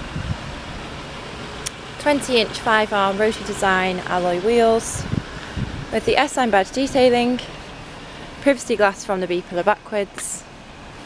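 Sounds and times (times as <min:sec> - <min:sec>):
low rumble: 0:00.0 - 0:01.7, 0:02.4 - 0:08.5
steady low background noise: 0:00.0 - 0:11.0.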